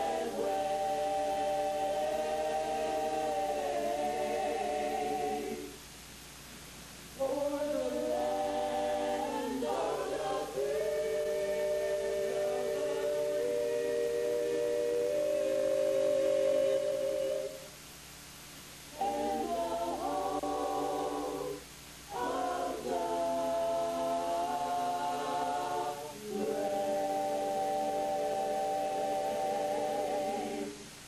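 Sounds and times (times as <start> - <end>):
choir singing unaccompanied: 0.0 - 5.8, 7.2 - 17.7, 18.9 - 31.0.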